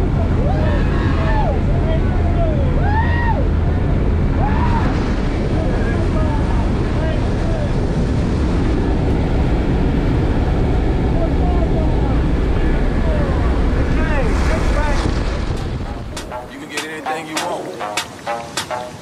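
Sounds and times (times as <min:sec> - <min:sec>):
plane engine and propeller drone: 0:00.0 - 0:19.0
wind rushing: 0:12.2 - 0:19.0.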